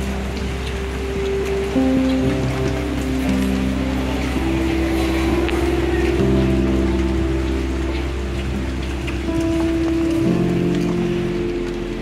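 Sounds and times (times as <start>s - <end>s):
music of long held chords: 0.0s - 12.0s
steady rain falling: 0.0s - 12.0s.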